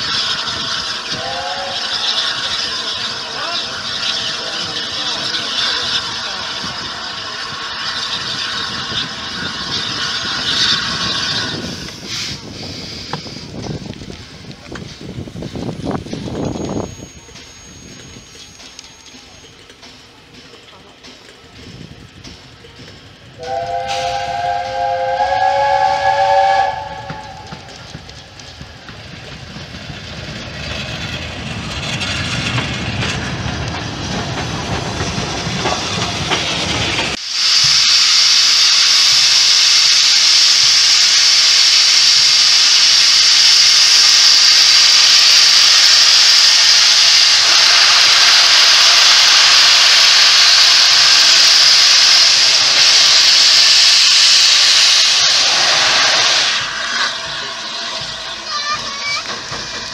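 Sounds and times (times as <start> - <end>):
steam locomotive whistle: 0.0 - 4.4, 23.4 - 27.9
loud hiss of steam: 0.0 - 59.9.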